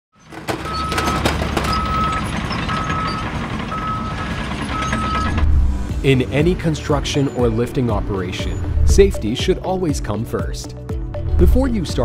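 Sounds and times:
low engine rumble: 0:00.4 - 0:09.8
reversing alarm beeping: 0:00.6 - 0:05.5, 0:06.9 - 0:09.0.

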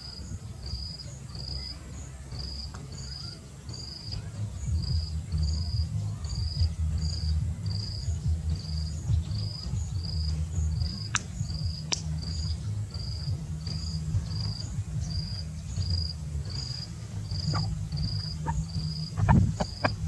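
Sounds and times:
continuous low rumble: 0:00.0 - 0:20.0
insect chirping: 0:00.0 - 0:20.0.

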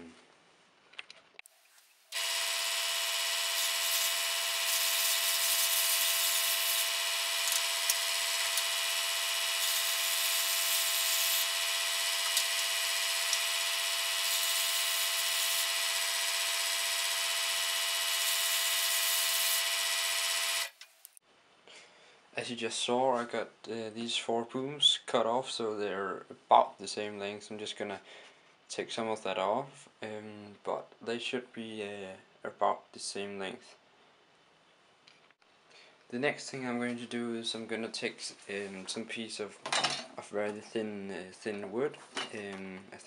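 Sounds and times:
electric scroll saw cutting wood: 0:02.1 - 0:20.8.

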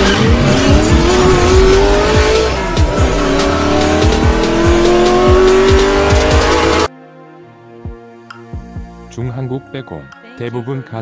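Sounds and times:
car engine revving: 0:00.0 - 0:06.9
electronic music with a beat: 0:00.0 - 0:06.9.

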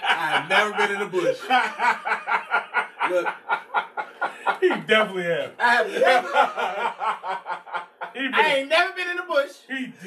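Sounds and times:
men laughing: 0:00.0 - 0:08.6
word spoken: 0:08.2 - 0:10.0.

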